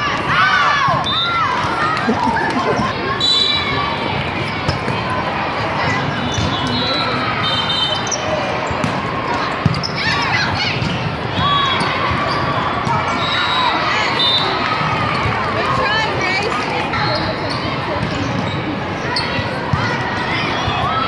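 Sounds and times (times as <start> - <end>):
crowd chatter: 0.0 - 21.0
sneaker squeaks on court: 6.2 - 8.9, 9.5 - 10.9.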